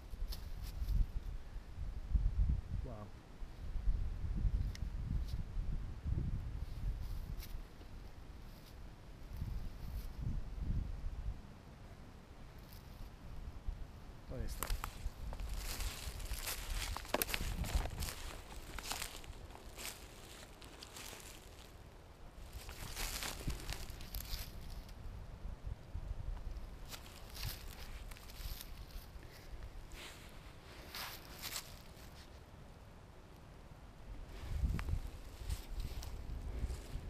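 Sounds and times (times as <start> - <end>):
footsteps crunching in dry leaves: 14.6 - 21.8, 22.4 - 24.9, 26.8 - 32.3, 34.3 - 37.0.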